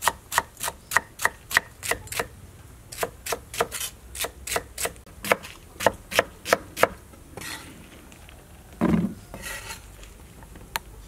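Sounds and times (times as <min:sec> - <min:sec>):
knife scraping: 0:03.0 - 0:05.6, 0:07.4 - 0:07.8, 0:09.3 - 0:10.0.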